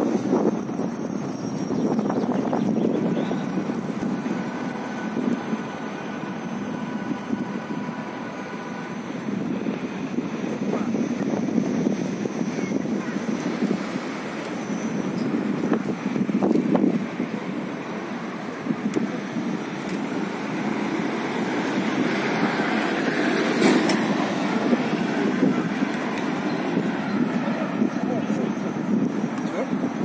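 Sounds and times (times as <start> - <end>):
road traffic: 0.0 - 30.0
wind on microphone: 0.0 - 30.0
indistinct voices: 23.6 - 30.0.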